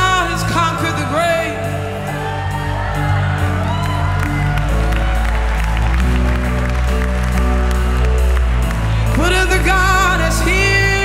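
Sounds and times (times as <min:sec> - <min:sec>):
band playing bass and keyboard: 0:00.0 - 0:11.0
congregation applauding: 0:02.0 - 0:11.0.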